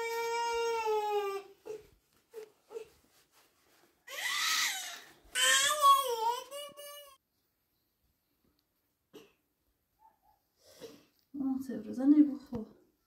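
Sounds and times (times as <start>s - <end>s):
baby crying: 4.1s - 7.2s.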